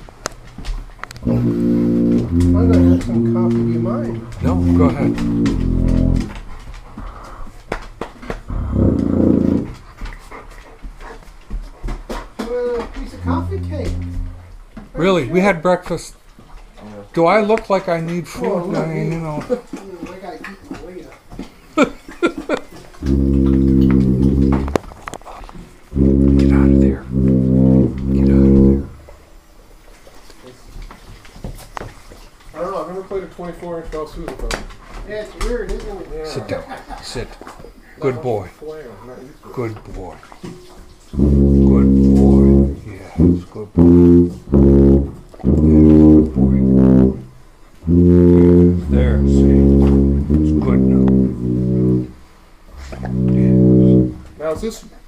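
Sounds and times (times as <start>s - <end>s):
sousaphone low note: 1.2s - 6.4s, 8.5s - 9.7s, 13.1s - 14.6s, 23.0s - 24.8s, 26.0s - 29.0s, 41.2s - 52.2s, 52.8s - 54.3s.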